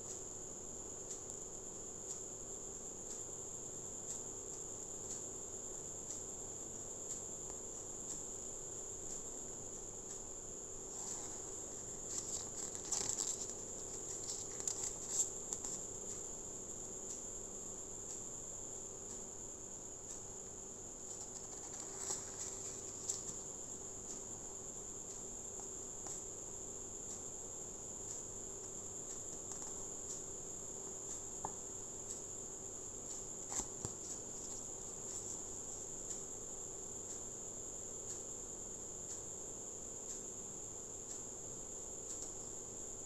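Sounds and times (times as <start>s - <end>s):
crickets chirping: 0.0s - 43.0s
faint low hum: 0.0s - 43.0s
faint ticks: 0.0s - 43.0s
paper pages rustling: 10.9s - 15.8s, 21.1s - 23.4s, 33.5s - 35.4s.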